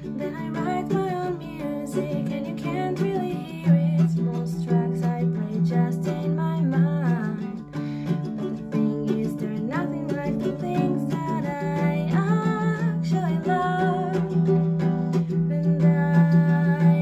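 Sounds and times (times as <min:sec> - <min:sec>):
ukulele strumming: 0:00.0 - 0:17.0
woman singing: 0:00.0 - 0:17.0.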